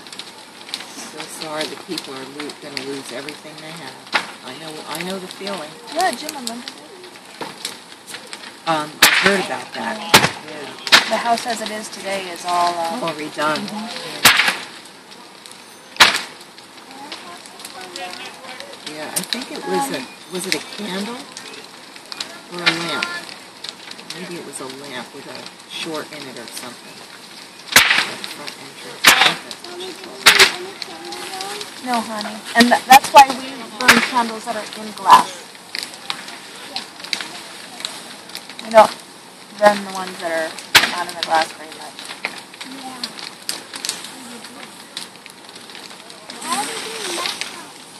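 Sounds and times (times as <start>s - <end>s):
faint voices: 0.0s - 47.9s
fire crackling and popping: 0.0s - 47.9s
steady fire rush: 0.0s - 47.9s
steady hiss: 0.0s - 47.9s
loud sharp crack: 4.0s - 4.4s, 5.0s - 11.7s, 12.4s - 19.4s, 21.0s - 31.8s, 32.5s - 39.6s, 40.5s - 47.8s.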